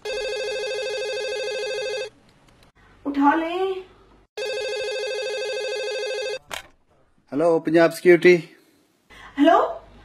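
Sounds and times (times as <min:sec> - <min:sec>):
electronic telephone ringing: 0:00.0 - 0:02.1, 0:04.4 - 0:06.4.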